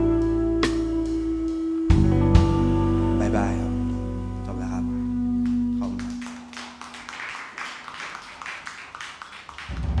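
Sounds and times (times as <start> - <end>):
electric guitar and keys chord: 0.0 - 6.3
small audience clapping: 5.4 - 10.0.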